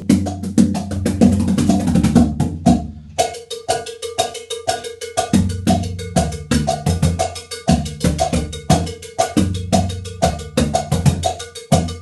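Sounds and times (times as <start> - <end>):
surdo drum booms: 0.0 - 3.0
foot-pedal cowbell: 3.2 - 12.0.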